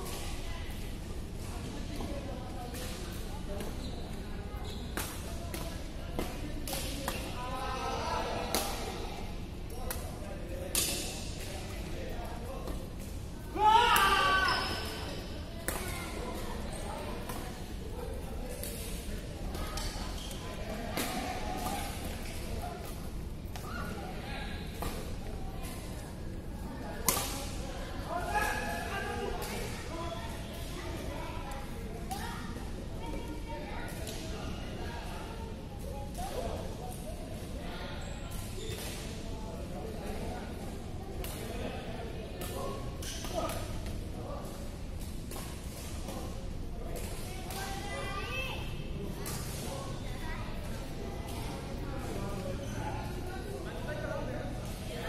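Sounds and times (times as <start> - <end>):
loud shout: 13.6 - 14.8.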